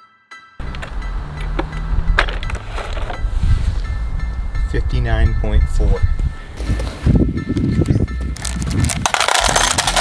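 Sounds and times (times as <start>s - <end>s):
steady low rumble: 0.6s - 8.9s.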